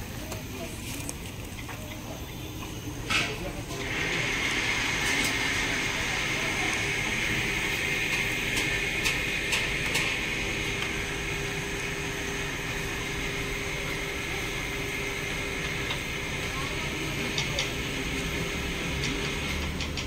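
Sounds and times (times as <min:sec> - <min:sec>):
machine drone with high hiss: 0:00.0 - 0:20.0.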